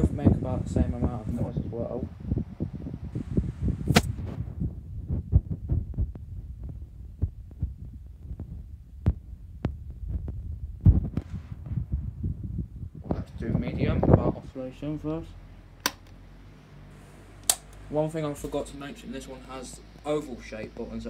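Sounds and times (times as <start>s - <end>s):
fan airflow buffeting microphone: 0.0s - 21.0s
sharp click: 3.9s - 4.2s, 17.4s - 17.8s.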